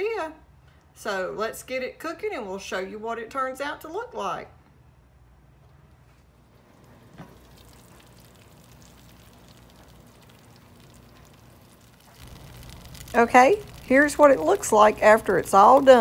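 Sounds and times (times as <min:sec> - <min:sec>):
food simmering with faint crackle: 0:06.0 - 0:16.0.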